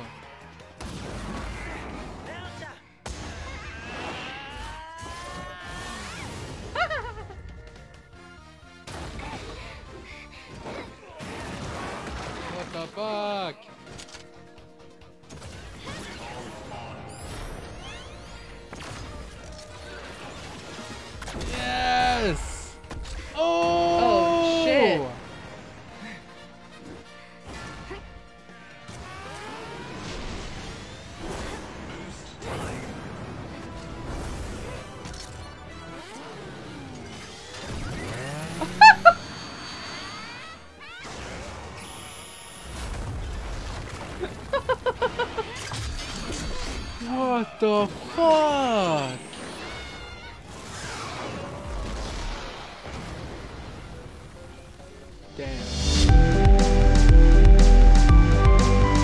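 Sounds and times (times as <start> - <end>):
announcer voice: 23.4 - 25.2, 47.0 - 49.2
loud synthesized chimes: 38.2 - 40.7
action show music: 53.8 - 59.0.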